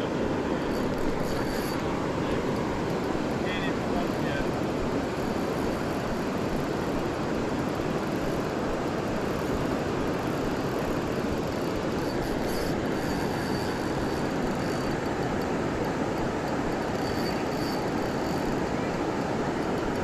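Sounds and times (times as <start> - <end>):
rushing river water roar: 0.0 - 20.0.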